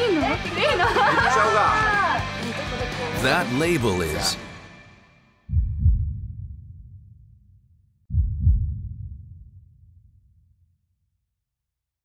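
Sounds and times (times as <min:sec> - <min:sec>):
heartbeat thump: 0:05.5 - 0:06.8, 0:08.1 - 0:09.4.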